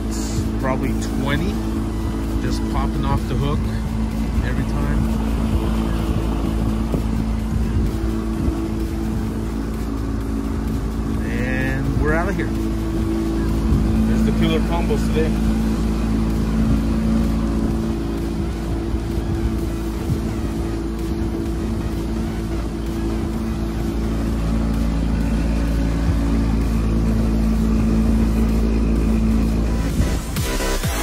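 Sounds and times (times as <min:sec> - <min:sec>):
electronic music: 0:00.0 - 0:31.0
outboard motor running: 0:00.0 - 0:31.0.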